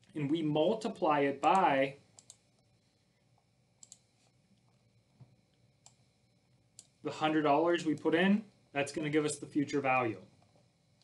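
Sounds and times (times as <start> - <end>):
faint computer clicks: 1.4 - 2.7, 3.4 - 6.0, 6.8 - 7.0.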